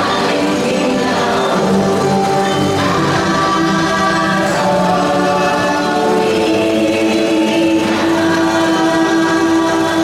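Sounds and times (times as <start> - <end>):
choral singing: 0.0 - 10.0.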